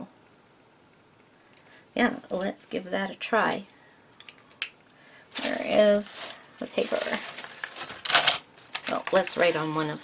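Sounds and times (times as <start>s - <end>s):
paper rustling: 5.3s - 10.0s.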